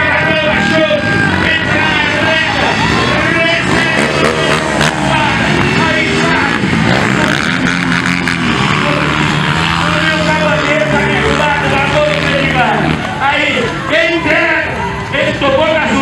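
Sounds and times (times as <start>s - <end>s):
dirt bike engines revving: 0.0s - 16.0s
voices: 0.0s - 16.0s.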